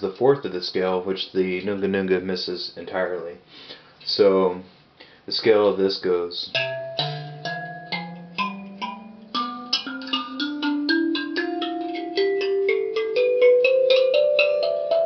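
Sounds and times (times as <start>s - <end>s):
thumb piano plucked notes: 6.5s - 15.0s.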